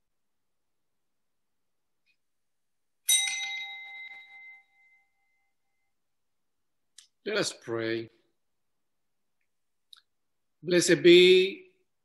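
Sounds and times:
small bell ringing: 3.0s - 6.0s.

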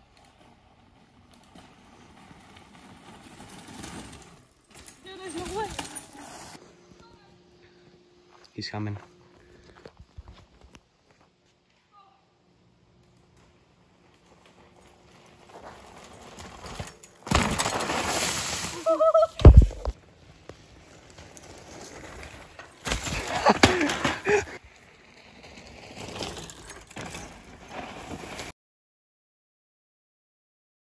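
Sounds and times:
voice: 5.0s - 6.2s.

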